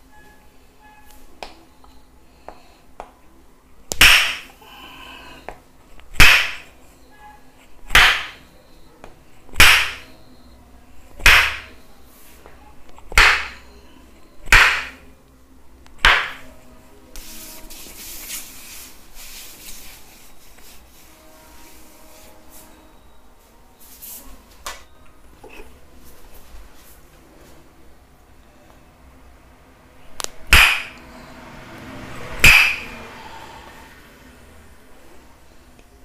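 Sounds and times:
wooden hammer knocking wooden stake: 6.2s - 6.6s, 8.0s - 8.4s, 9.6s - 10.0s, 11.2s - 11.7s, 13.2s - 13.6s, 14.5s - 15.0s, 16.0s - 16.4s, 30.5s - 31.0s.

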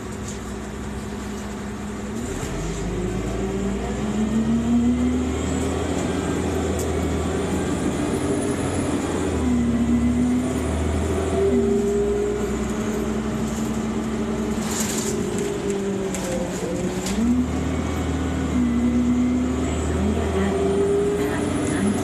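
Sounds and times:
bus engine and transmission: 0.0s - 22.0s
road rumble: 0.0s - 22.0s.

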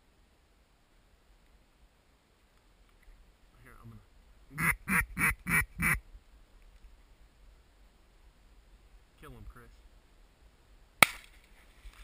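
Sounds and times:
duck call quacks: 4.6s - 6.0s
fainter duck call: 4.6s - 6.0s.

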